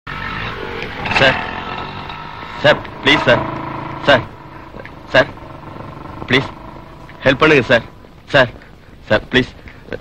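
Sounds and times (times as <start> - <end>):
motorcycle engine idling: 0.1 - 8.8.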